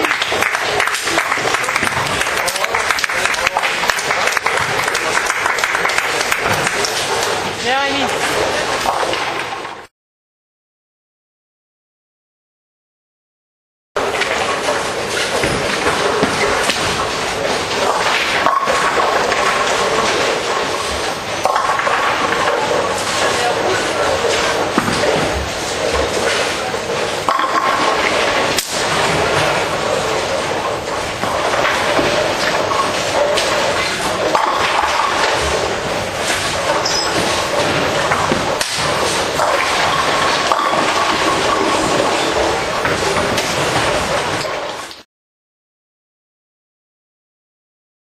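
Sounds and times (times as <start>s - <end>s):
bowling balls rolling: 0.0s - 9.9s, 14.0s - 45.0s
ball crashing into pins: 14.2s - 44.8s.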